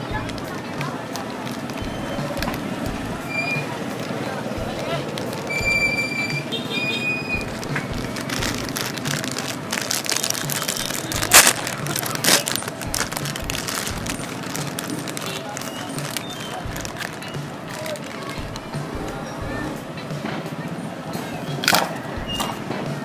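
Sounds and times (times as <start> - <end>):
loud sharp crackles: 0.0 - 19.0
music with steady beat: 0.0 - 23.0
plastic bag crinkling: 0.3 - 2.8, 3.4 - 6.6, 7.2 - 18.8.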